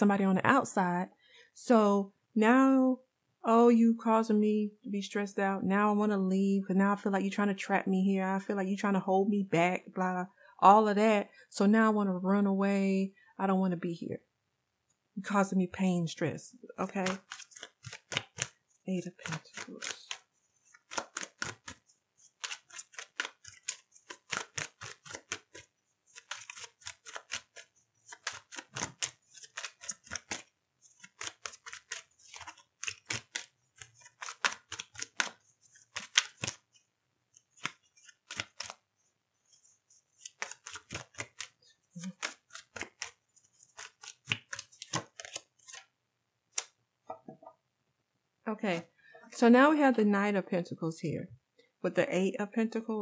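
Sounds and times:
cards being shuffled: 0:16.8 - 0:38.8, 0:39.4 - 0:45.9, 0:46.5 - 0:46.8.

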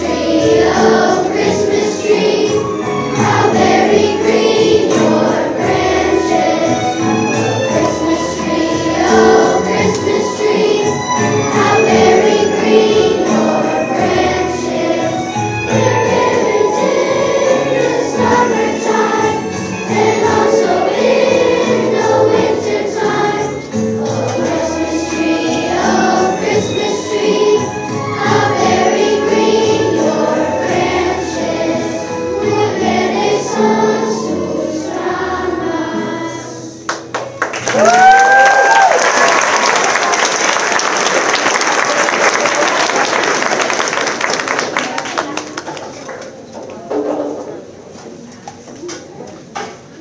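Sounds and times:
children's choir singing: 0:00.0 - 0:37.9, 0:38.8 - 0:47.8
audience applause: 0:36.9 - 0:46.5
whooping cheer: 0:37.6 - 0:40.3.

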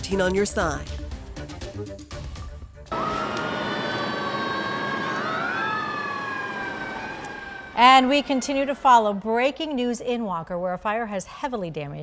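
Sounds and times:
background noise rush: 0:02.9 - 0:09.4
sirens wailing: 0:02.9 - 0:09.6.

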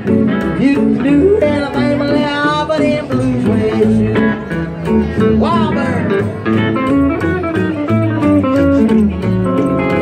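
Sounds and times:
acoustic guitar: 0:00.0 - 0:10.0
upright bass: 0:00.0 - 0:10.0.

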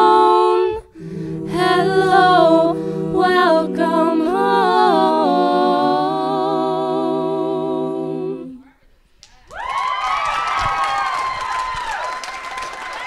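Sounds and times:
vocal group singing held chord: 0:00.0 - 0:08.7
audience cheering and clapping: 0:09.4 - 0:13.0.

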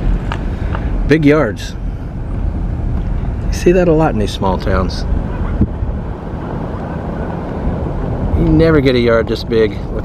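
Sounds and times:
car driving rumble inside cabin: 0:00.0 - 0:10.0.

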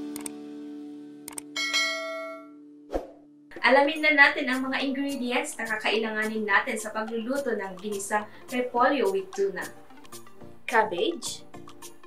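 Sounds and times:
bright bell ding: 0:01.6 - 0:02.6.

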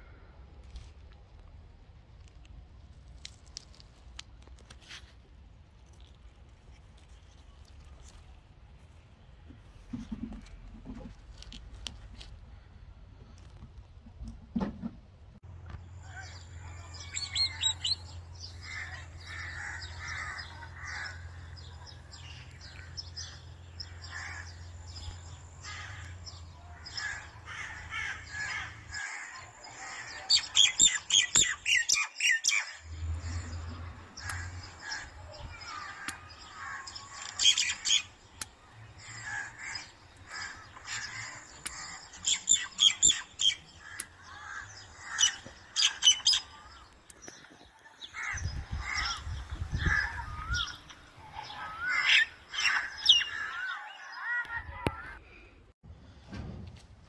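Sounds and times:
birds chirping and calling: 0:15.9 - 0:55.2.

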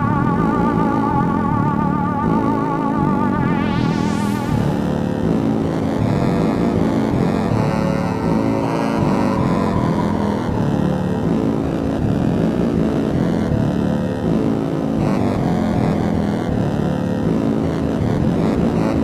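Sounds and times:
low sustained synth chords: 0:00.0 - 0:19.0.

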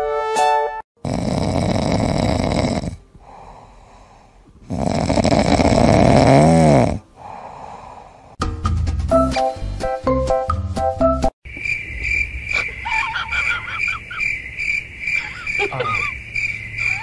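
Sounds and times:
cat snoring: 0:01.0 - 0:07.4.

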